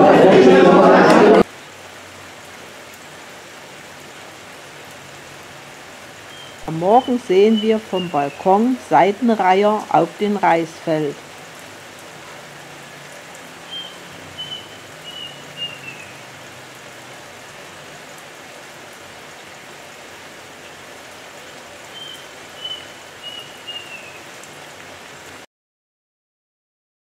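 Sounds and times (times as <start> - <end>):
bird singing whistled notes: 6.3 - 8.5, 13.7 - 16.1, 21.9 - 24.2.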